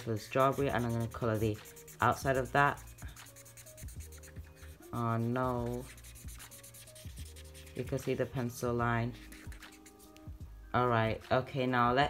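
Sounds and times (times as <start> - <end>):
marker scratching on paper: 0.0 - 10.2
faint background music: 0.0 - 12.0.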